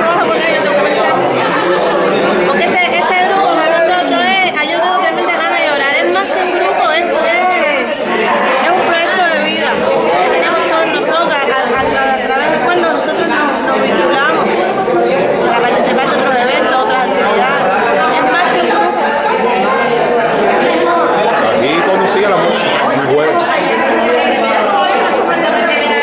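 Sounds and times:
people chattering: 0:00.0 - 0:26.0.

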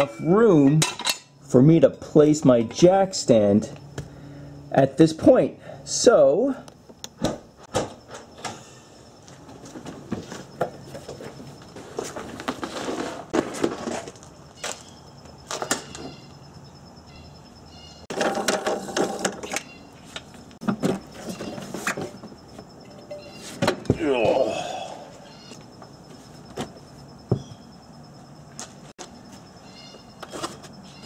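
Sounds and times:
rustling: 0:09.6 - 0:14.9
scraping: 0:10.2 - 0:14.9.

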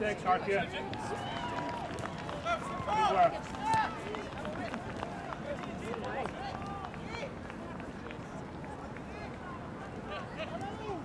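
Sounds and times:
steady outdoor hum: 0:00.0 - 0:11.0.

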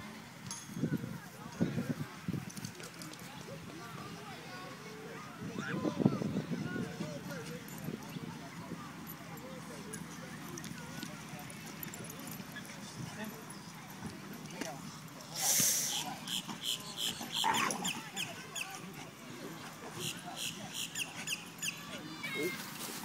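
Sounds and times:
short hiss: 0:15.3 - 0:16.0
dogs growling and whining: 0:17.2 - 0:18.2.

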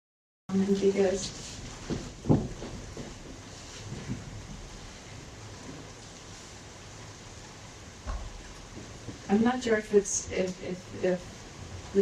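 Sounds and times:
room tone hiss: 0:00.5 - 0:12.0.

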